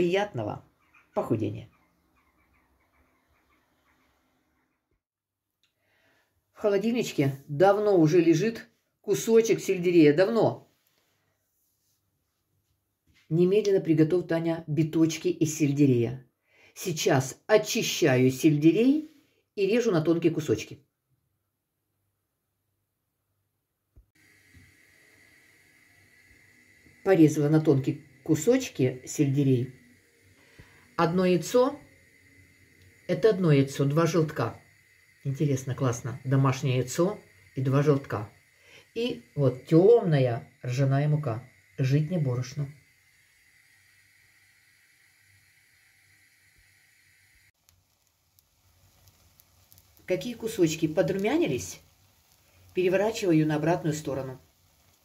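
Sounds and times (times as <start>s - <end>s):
faint room hiss: 0.0s - 55.0s
food frying in oil: 24.2s - 55.0s
thin steady whine: 24.2s - 55.0s.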